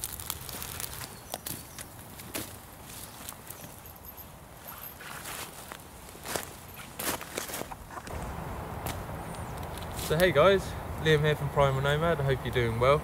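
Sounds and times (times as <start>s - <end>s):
campfire crackling and snapping: 0.0s - 2.6s, 8.0s - 10.4s
handling sticks and dry leaves: 0.0s - 11.1s.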